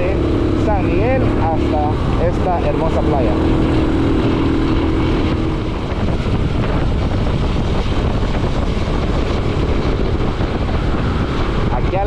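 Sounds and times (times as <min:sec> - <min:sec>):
motorcycle running: 0:00.0 - 0:12.0
road noise: 0:00.0 - 0:12.0
wind rushing: 0:00.0 - 0:12.0.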